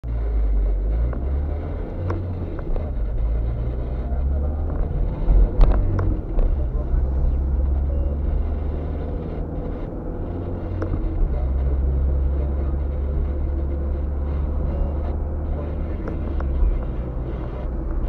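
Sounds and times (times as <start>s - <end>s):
car engine and tyre rumble: 0.0s - 18.0s.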